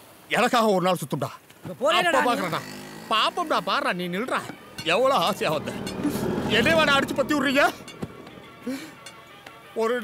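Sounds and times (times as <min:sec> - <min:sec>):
low rumble: 0:04.2 - 0:09.4.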